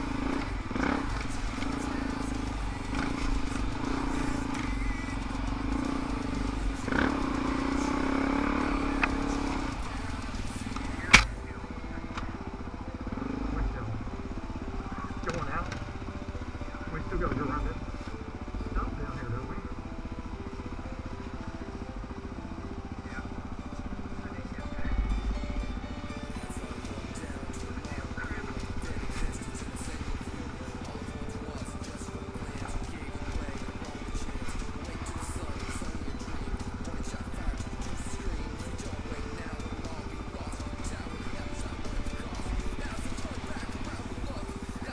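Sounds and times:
dirt bike engine running: 0.0 - 44.9.

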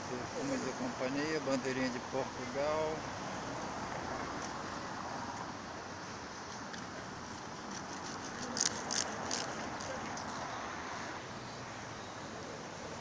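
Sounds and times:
traffic noise: 0.0 - 13.0
passers-by's voices: 8.1 - 11.2.

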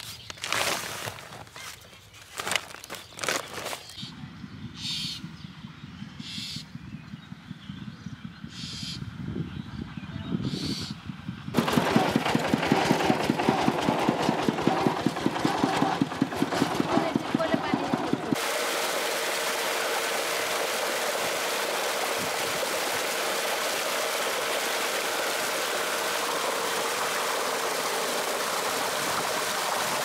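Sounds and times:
plastic sack rustling: 0.0 - 4.0
tractor engine chugging: 11.1 - 30.0.

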